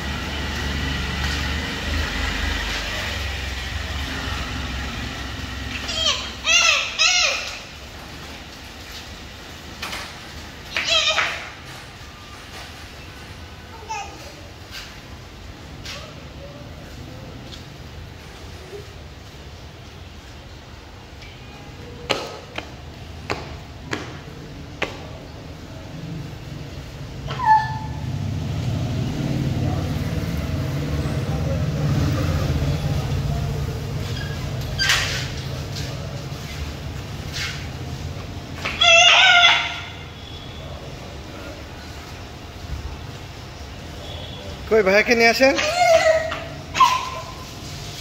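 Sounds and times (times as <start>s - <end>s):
stroller wheels rolling on concrete: 0.0s - 12.9s, 27.6s - 39.5s.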